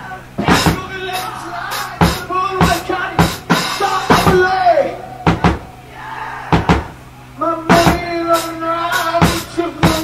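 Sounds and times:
heavy drum hits: 0:00.4 - 0:05.8, 0:06.5 - 0:07.1, 0:07.7 - 0:10.0.

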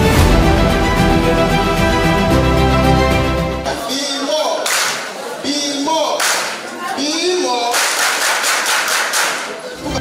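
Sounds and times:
music: 0:00.0 - 0:03.8, 0:09.8 - 0:10.0
crowd applauding: 0:06.2 - 0:10.0.

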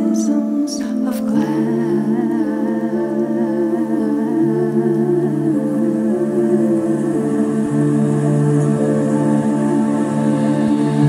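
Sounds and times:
female voices humming harmony: 0:00.0 - 0:11.0.

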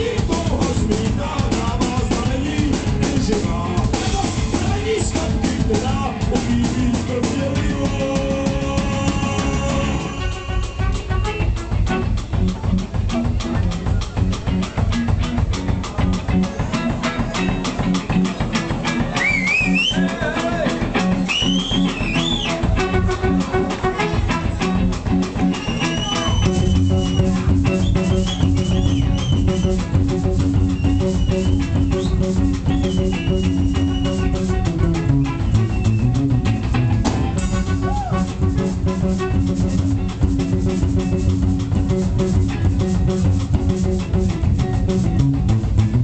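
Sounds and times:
bending lead guitar line: 0:00.0 - 0:46.0
drum kit beat: 0:00.0 - 0:46.0
live rock band playing: 0:00.0 - 0:46.0.

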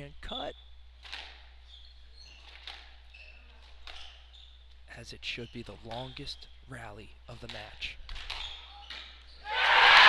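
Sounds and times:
court shoes squeaking on wood: 0:01.0 - 0:06.6, 0:08.1 - 0:09.4.

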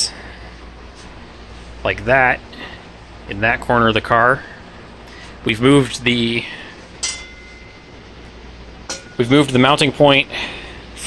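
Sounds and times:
low shop hum: 0:00.0 - 0:11.0
metal clink with ring: 0:07.0 - 0:08.1, 0:08.9 - 0:09.4.

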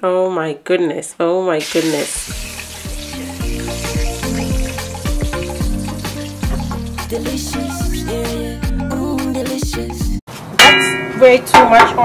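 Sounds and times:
music with a steady beat: 0:02.9 - 0:10.2.

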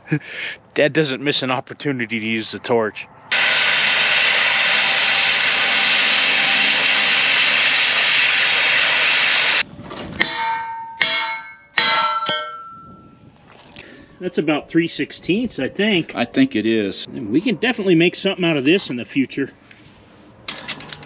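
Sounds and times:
gas cutting torch hissing: 0:03.3 - 0:09.6
steel striking steel: 0:10.2 - 0:13.1.

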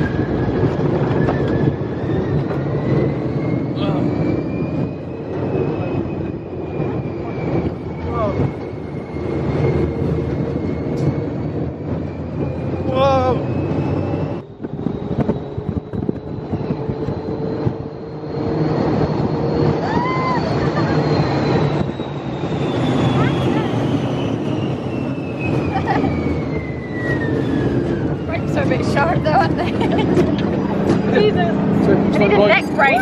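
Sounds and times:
high whine falling in pitch: 0:00.0 - 0:33.0
ride vehicle rumbling at speed: 0:00.0 - 0:33.0
wind rushing past microphone: 0:00.0 - 0:33.0.

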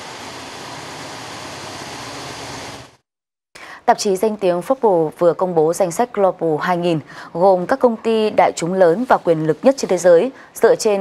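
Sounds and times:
woman speaking: 0:03.8 - 0:11.0.

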